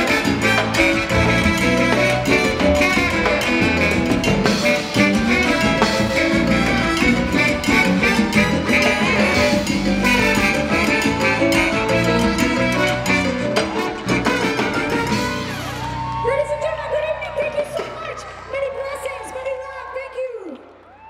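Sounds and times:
trombones and saxophone: 0.0s - 16.0s
timbales congas and drum kit: 0.0s - 16.2s
salsa band playing: 0.0s - 18.4s.

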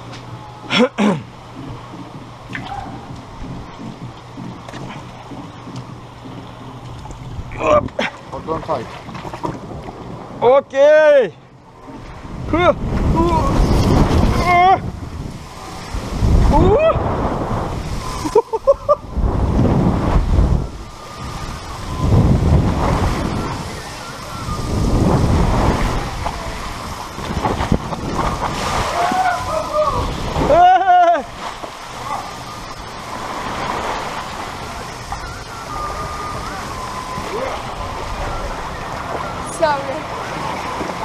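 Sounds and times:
water rushing and splashing: 0.0s - 41.0s.

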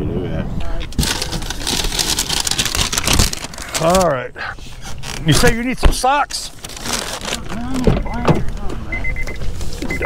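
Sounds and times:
car door warning chime beeping: 8.0s - 10.0s.

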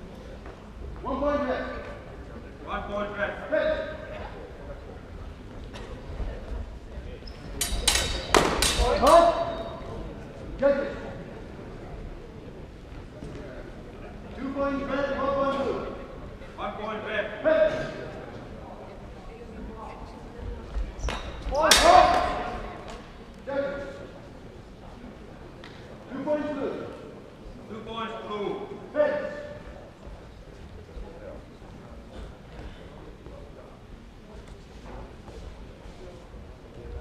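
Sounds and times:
swords clashing: 7.6s - 9.6s, 21.7s - 22.4s.

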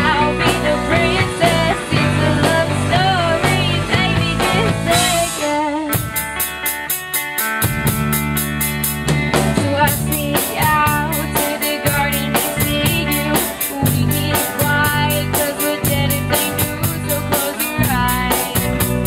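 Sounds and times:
rock band playing: 0.0s - 19.0s.

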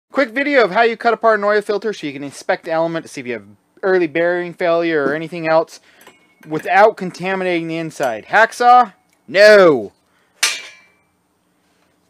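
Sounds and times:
sharp metallic clank: 10.4s - 11.2s.

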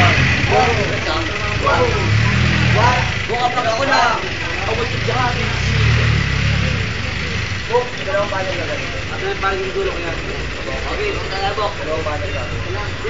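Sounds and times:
people chattering and calling out: 0.0s - 13.0s.

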